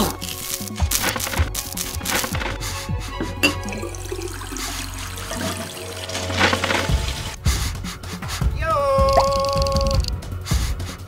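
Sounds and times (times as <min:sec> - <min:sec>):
background music: 0:00.0 - 0:11.0
toilet flushing: 0:00.8 - 0:07.4.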